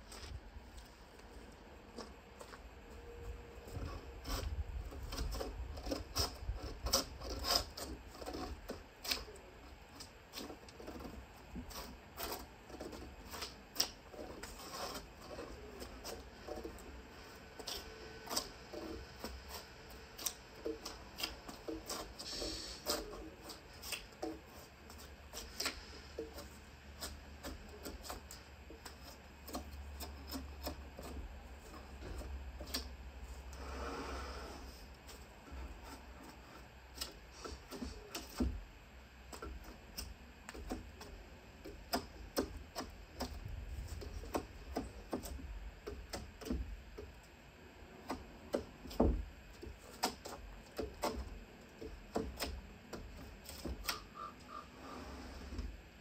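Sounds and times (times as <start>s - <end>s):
drawknife scraping bark: 3.7s - 9.4s, 10.0s - 32.9s.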